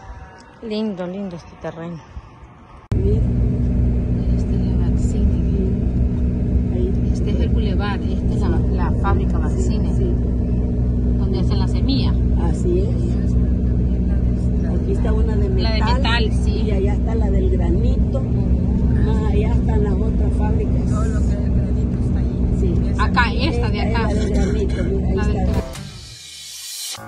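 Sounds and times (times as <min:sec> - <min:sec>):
car engine and road noise: 0:00.0 - 0:27.0.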